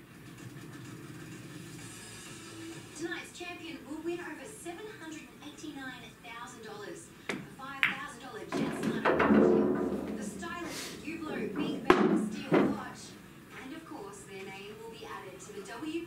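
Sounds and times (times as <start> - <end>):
cue striking ball crack: 7.8 - 13.0
billiard balls knocking: 7.8 - 13.1.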